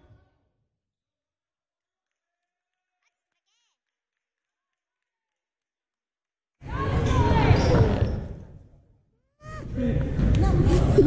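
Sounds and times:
basketball court noise: 6.6 - 8.7
echoing crowd voices: 6.6 - 11.0.

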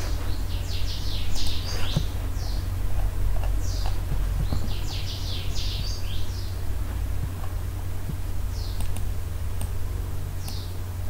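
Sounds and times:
birds chirping: 0.0 - 11.0
low electrical hum: 0.0 - 11.0.

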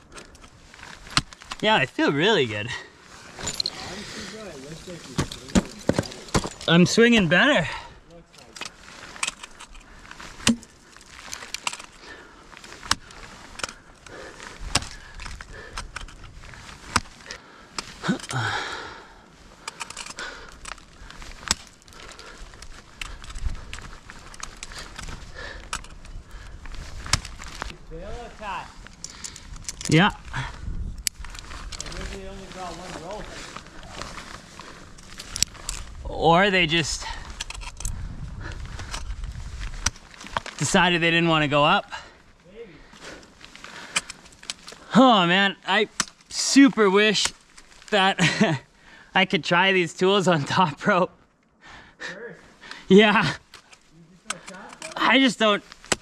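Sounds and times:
metal climbing gear clinking: 0.0 - 18.6, 19.5 - 42.3, 42.9 - 48.6, 52.7 - 56.0
ice picks striking ice: 10.3 - 11.9, 53.5 - 56.0.

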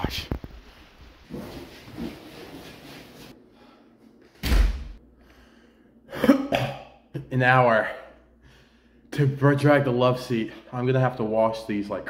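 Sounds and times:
sudden loud thump: 4.4 - 5.0
man coughing: 6.1 - 7.3.

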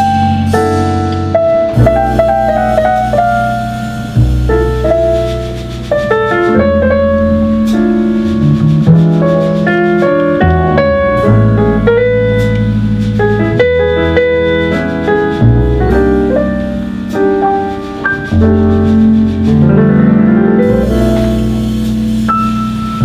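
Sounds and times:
drums played lightly: 0.0 - 23.0
grand piano: 0.0 - 23.0
plucked double bass: 0.0 - 23.0.

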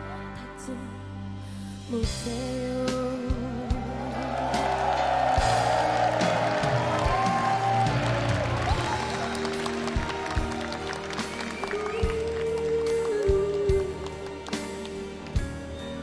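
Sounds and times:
live band playing ballad: 0.0 - 16.0
audience applauding: 4.0 - 15.5.

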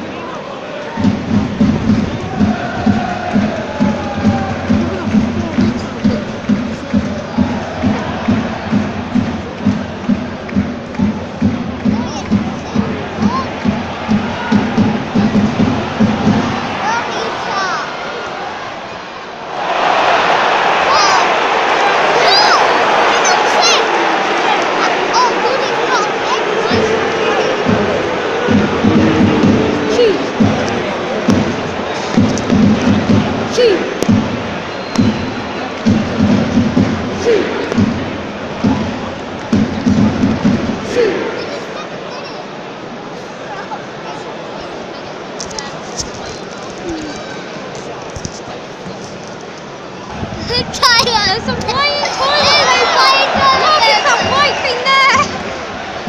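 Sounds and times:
crowd roaring: 0.0 - 10.3, 12.0 - 39.4, 40.2 - 42.1, 50.1 - 56.0
low rhythmic thumping: 1.0 - 16.9, 26.7 - 41.2
crowd whistling: 26.7 - 31.2, 33.9 - 37.7, 52.1 - 55.6.

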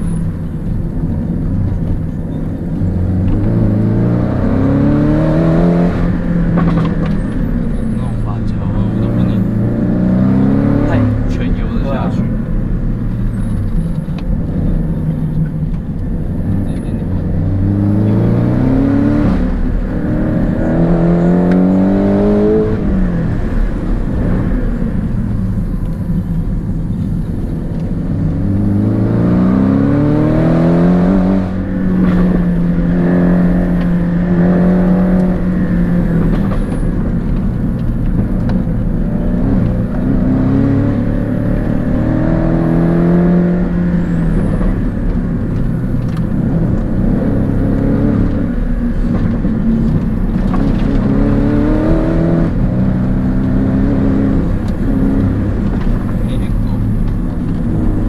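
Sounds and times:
car engine revving in cabin: 0.0 - 58.0.

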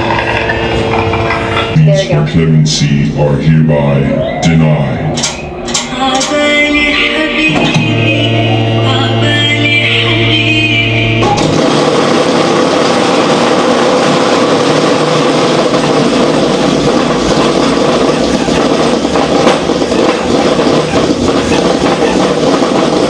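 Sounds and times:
steady drone: 0.0 - 23.0
electrical buzzing and crackling: 11.2 - 23.0.

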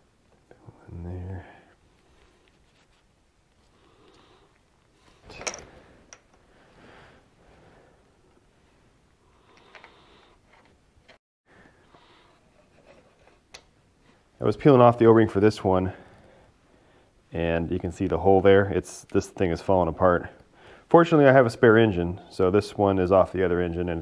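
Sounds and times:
small metal parts handling: 5.2 - 6.4.

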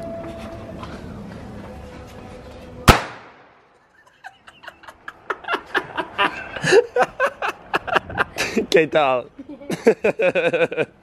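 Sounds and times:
firecracker bang: 2.8 - 3.6.

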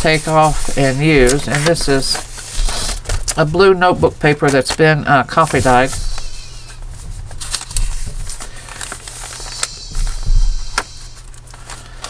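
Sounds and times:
paper pages rustling: 0.0 - 12.0.

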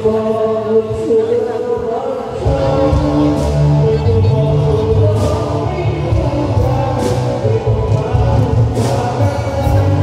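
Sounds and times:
music with strong bass line: 2.4 - 10.0.

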